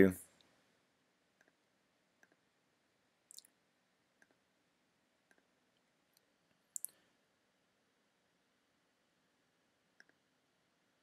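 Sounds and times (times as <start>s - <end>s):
computer mouse clicks: 2.2s - 2.4s, 10.0s - 10.2s.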